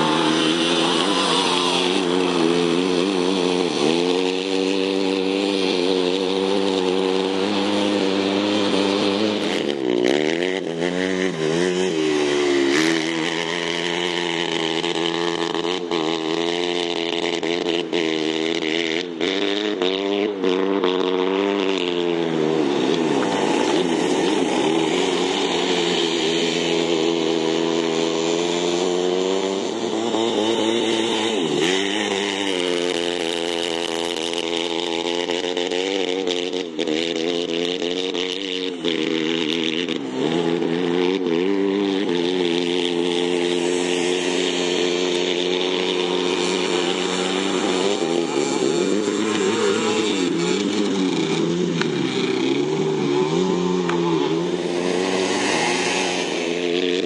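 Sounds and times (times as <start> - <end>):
go-kart engine revving: 0.0 - 57.0.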